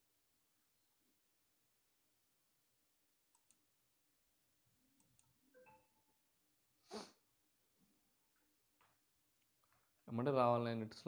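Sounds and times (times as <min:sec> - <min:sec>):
computer mouse clicks: 0:03.3 - 0:03.6, 0:05.0 - 0:05.3.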